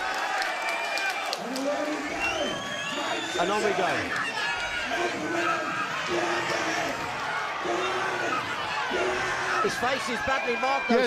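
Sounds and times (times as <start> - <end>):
men shouting: 2.9 - 11.0
crowd hubbub: 3.0 - 11.0.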